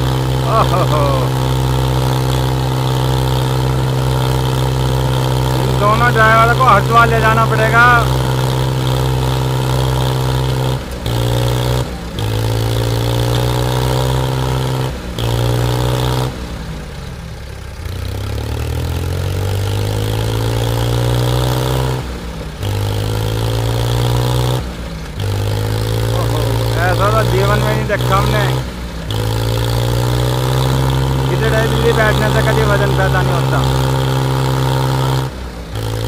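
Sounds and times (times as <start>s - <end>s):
tractor engines under heavy load: 0.0s - 36.0s.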